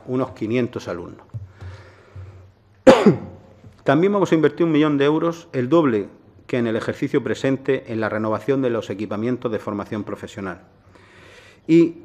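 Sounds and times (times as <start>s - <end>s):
man coughing: 2.8s - 3.5s.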